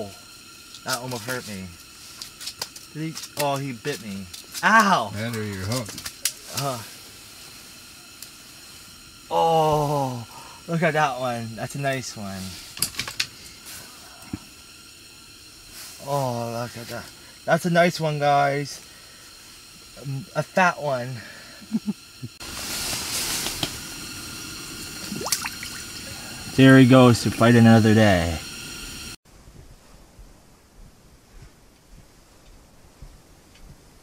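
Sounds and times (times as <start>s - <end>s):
steady hiss: 0.0s - 34.0s.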